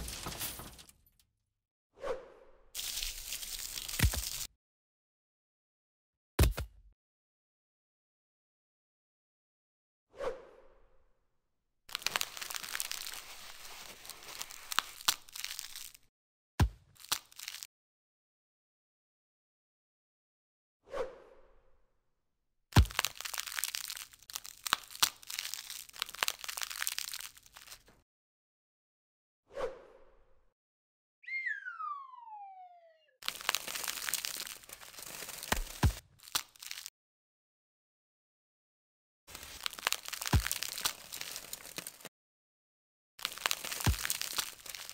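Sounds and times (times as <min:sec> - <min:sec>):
crackly tearing and crunching: 0:02.8 - 0:04.5, 0:11.9 - 0:16.1, 0:16.9 - 0:17.7, 0:22.8 - 0:28.0, 0:33.2 - 0:36.9, 0:39.3 - 0:42.1, 0:43.2 - 0:44.9
falling tone: 0:31.2 - 0:33.2
scalpel scraping gritty crust: 0:39.3 - 0:42.1, 0:43.2 - 0:44.9.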